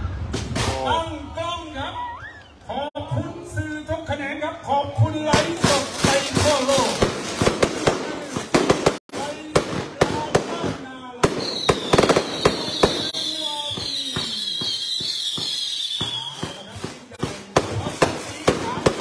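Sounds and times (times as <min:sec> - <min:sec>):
sharp cracks and bangs: 0:00.3 - 0:01.0, 0:05.3 - 0:19.0.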